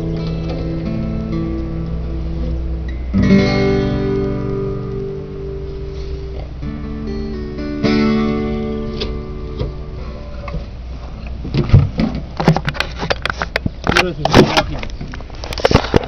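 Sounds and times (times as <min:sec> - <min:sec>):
acoustic guitar notes and strum: 0:00.0 - 0:16.0.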